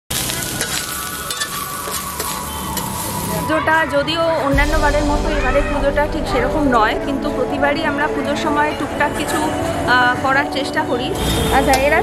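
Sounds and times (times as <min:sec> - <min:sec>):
rice sizzling on a griddle: 0:00.1 - 0:03.6.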